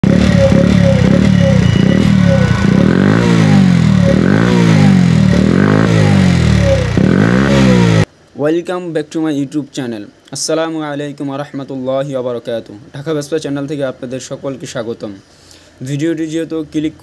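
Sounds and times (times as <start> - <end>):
small motorbike engine revving: 0.0 - 8.1.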